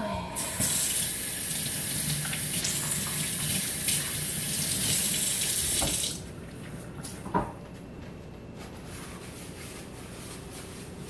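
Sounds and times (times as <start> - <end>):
faucet running water into sink: 0.4 - 6.2.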